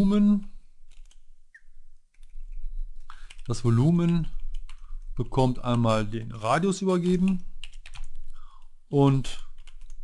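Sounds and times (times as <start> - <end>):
computer keyboard clicks: 0.9 - 1.2, 7.2 - 8.3.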